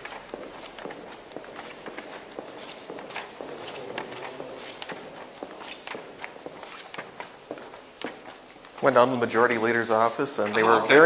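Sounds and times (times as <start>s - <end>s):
footsteps on stone floor: 0.0s - 8.9s.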